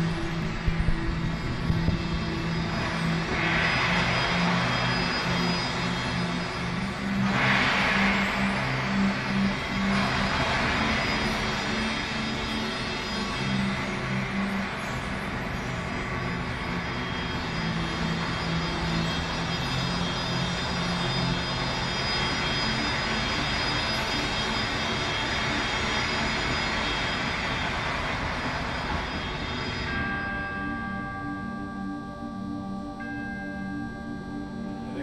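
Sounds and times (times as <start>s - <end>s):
steady low drone: 0.0s - 35.0s
ringing bell-like tones: 29.1s - 35.0s.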